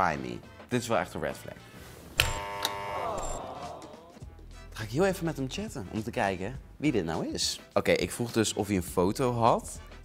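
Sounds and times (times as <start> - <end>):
descending game show buzzer: 2.2 - 3.4.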